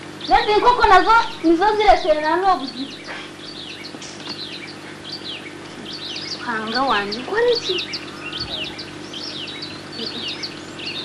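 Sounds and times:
low steady hum: 0.0 - 11.0
small birds chirping: 0.0 - 11.0.

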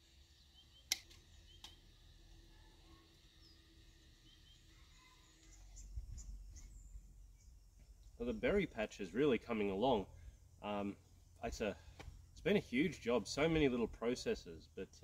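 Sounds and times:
faint bird chirps: 0.0 - 8.4.

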